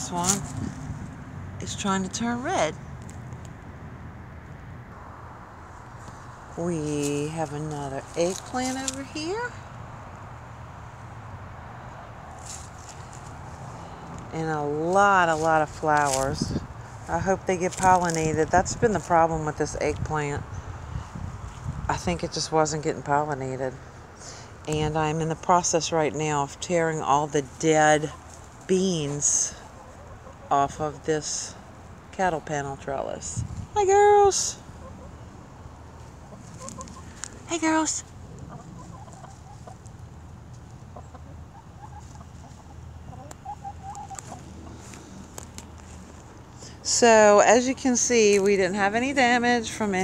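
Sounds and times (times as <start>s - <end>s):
faint rustle: 12.3s - 18.3s, 43.9s - 46.9s
hens clucking softly: 38.3s - 45.4s.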